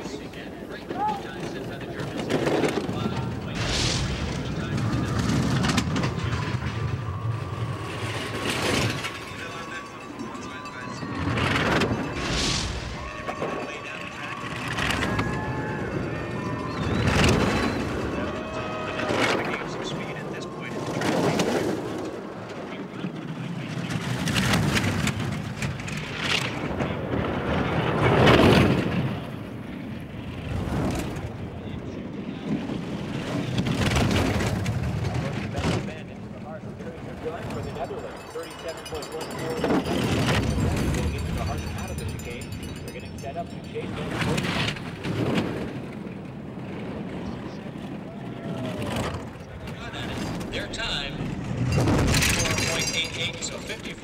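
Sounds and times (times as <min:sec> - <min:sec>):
bobsled runners rumbling on ice: 0:00.0 - 0:54.0.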